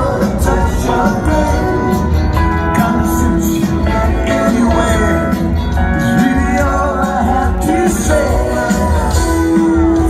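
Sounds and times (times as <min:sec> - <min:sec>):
acoustic guitar: 0:00.0 - 0:10.0
drums with cymbals: 0:00.0 - 0:10.0
upright bass: 0:00.0 - 0:10.0.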